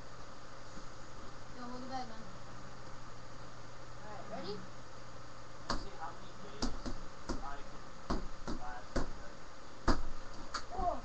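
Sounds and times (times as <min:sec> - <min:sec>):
punches thudding on punching bag: 0:05.7 - 0:06.0, 0:06.6 - 0:11.0.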